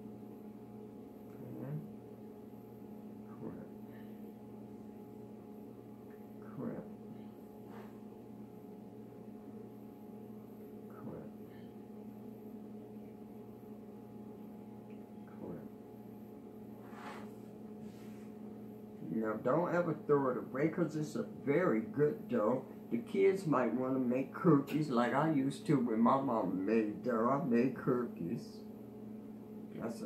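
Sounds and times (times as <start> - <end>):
low electrical hum: 0.0 - 30.0.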